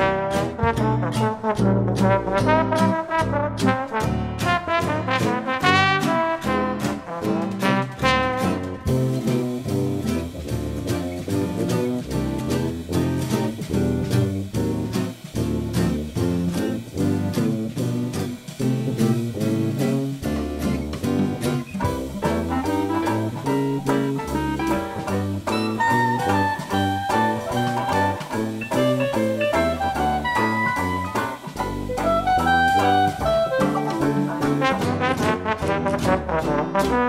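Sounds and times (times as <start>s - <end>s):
instrumental swing jazz: 0.0s - 37.0s.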